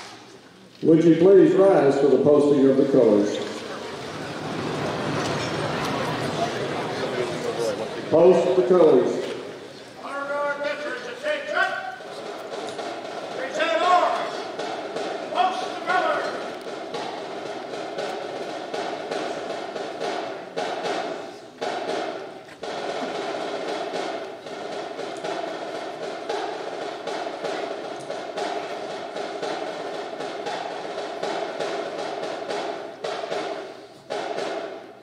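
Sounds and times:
snare drum cadence: 2.8s - 35.0s
person calling drill commands: 15.3s - 16.5s.

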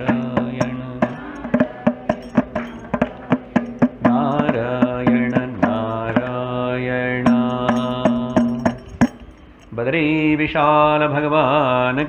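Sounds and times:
percussion strikes: 0.0s - 9.8s
man singing a devotional chant: 0.0s - 12.0s.

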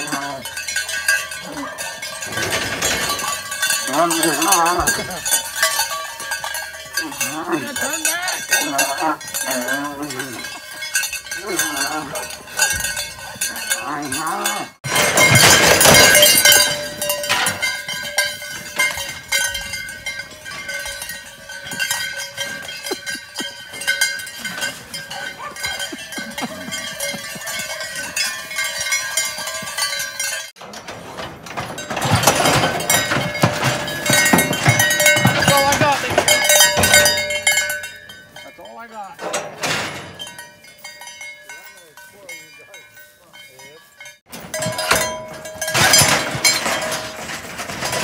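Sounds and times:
cowbells clanking: 0.0s - 48.0s.

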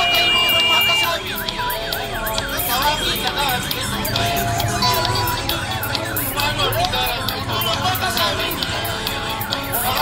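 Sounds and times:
singing or music: 0.0s - 10.0s
siren yelping: 0.0s - 10.0s
steady high tone: 0.0s - 10.0s.

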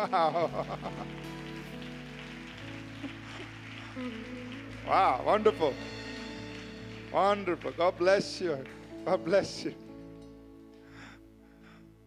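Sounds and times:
man laughing: 0.0s - 1.1s
soft keyboard chords: 0.0s - 12.0s.

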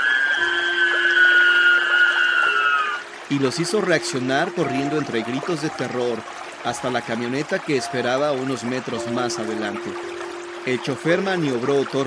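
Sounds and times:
ghostly wailing: 0.0s - 4.9s.

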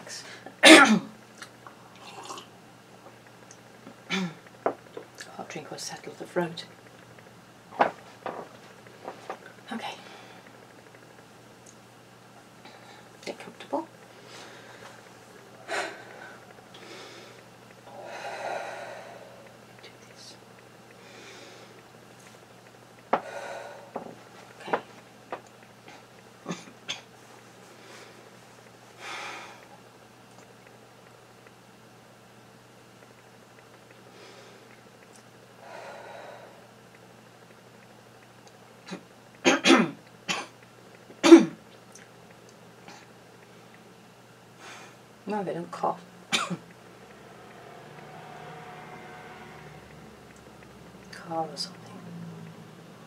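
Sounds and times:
woman coughing: 0.6s - 1.1s, 39.5s - 40.5s, 41.2s - 41.6s, 46.3s - 46.6s
woman exhaling heavily: 17.9s - 19.5s, 23.2s - 24.1s, 35.6s - 36.7s.

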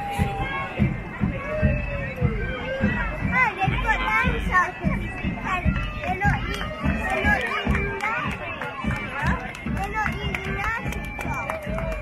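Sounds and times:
crowd chattering: 0.0s - 12.0s
regular low thuds: 0.0s - 12.0s.

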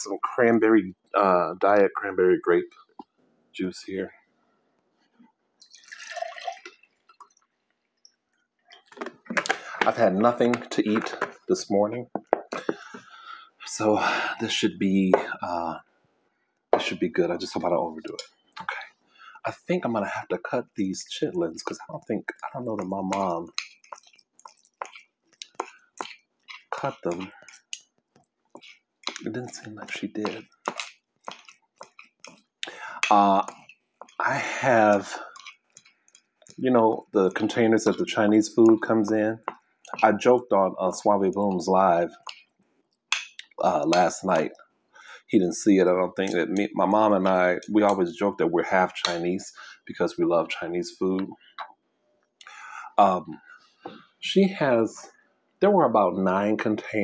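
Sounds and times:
juice pouring into a glass: 5.6s - 8.0s.

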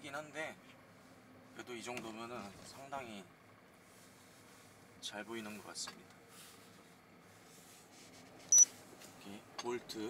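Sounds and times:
faint car cabin road noise: 0.0s - 10.0s.

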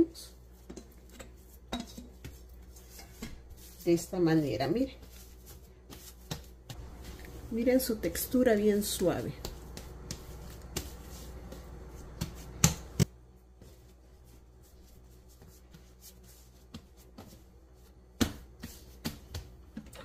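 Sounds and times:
hands slapping bread dough: 0.6s - 19.9s.

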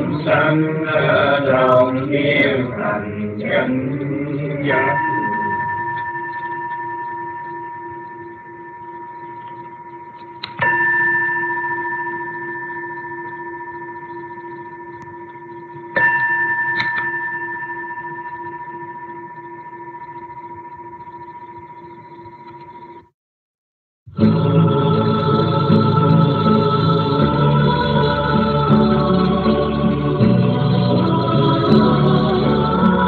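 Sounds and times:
bowl bell ringing: 4.6s - 23.0s.

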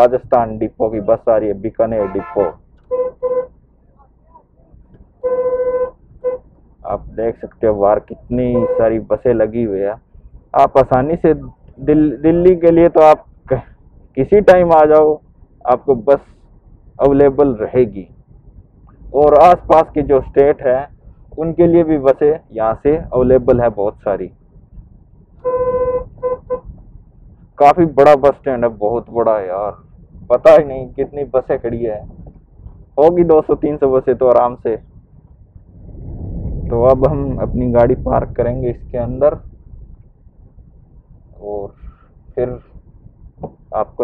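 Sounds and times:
vehicle horn honking: 2.0s - 3.6s, 5.2s - 6.6s, 8.5s - 9.0s, 25.4s - 26.7s.

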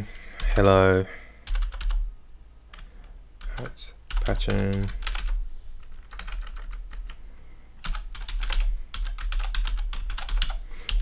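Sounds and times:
typing on computer keyboard: 1.4s - 2.1s, 2.7s - 7.2s, 7.8s - 11.0s.

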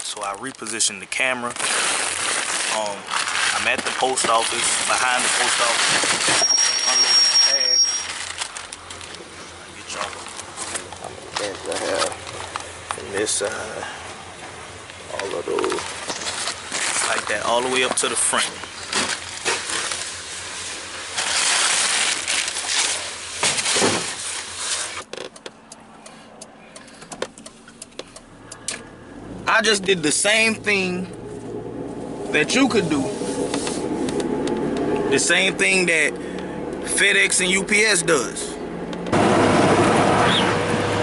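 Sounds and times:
bags and plastic crates rustling: 0.1s - 12.5s, 15.6s - 25.0s
road and wind noise in car: 7.5s - 41.0s
scattered clicks and knocks: 25.0s - 25.8s, 26.4s - 28.8s.

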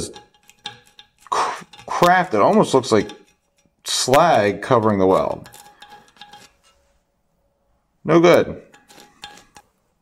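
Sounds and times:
metal rod tapping steel: 0.0s - 6.8s, 8.6s - 9.7s.

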